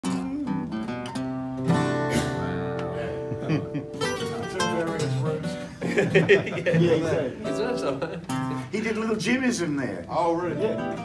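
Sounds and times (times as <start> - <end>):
acoustic guitars playing: 0.0 - 11.0.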